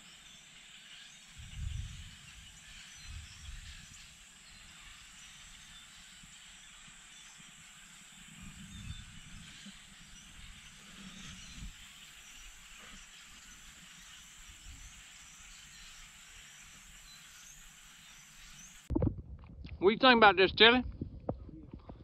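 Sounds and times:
high-pitched whine: 0:00.0 - 0:18.9
river hiss: 0:00.0 - 0:18.9
soft low bumps: 0:18.9 - 0:22.0.

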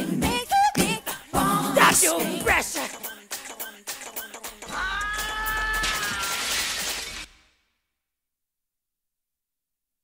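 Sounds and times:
beatboxed clicks: 0:02.8 - 0:04.7.

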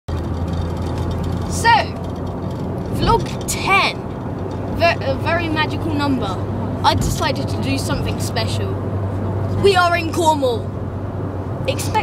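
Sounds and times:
road and engine rumble in car: 0:00.1 - 0:12.0.

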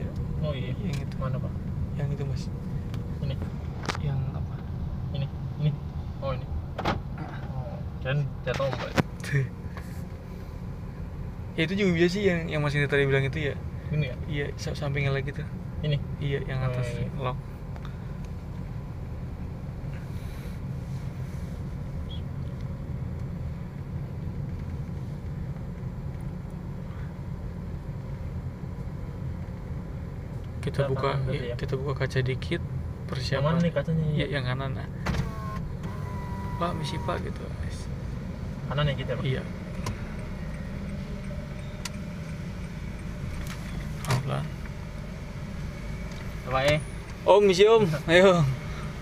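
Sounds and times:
car engine and tyre rumble: 0:00.0 - 0:49.0.

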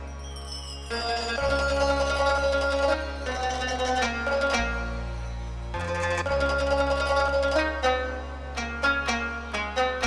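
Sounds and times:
plucked string melody: 0:00.0 - 0:10.0.

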